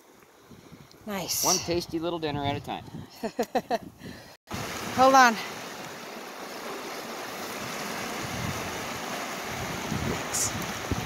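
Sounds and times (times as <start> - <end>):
wind buffeting microphone: 0.4 - 5.0, 7.6 - 11.0
river water rushing over rocks: 4.5 - 11.0.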